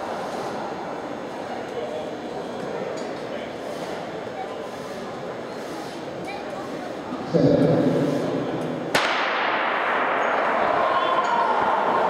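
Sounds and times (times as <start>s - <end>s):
starter's gun crack with echo: 8.9s - 10.3s.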